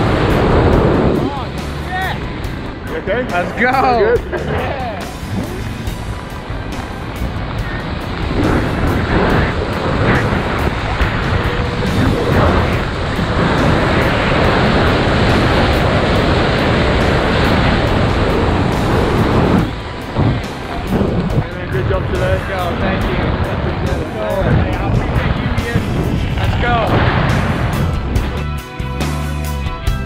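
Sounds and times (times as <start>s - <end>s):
wind rushing over microphone: 0.0s - 28.8s
background music with a beat: 0.0s - 30.0s.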